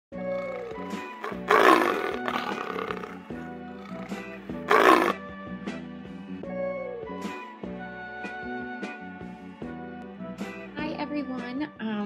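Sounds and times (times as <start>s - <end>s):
tiger roaring: 0.3s - 5.2s.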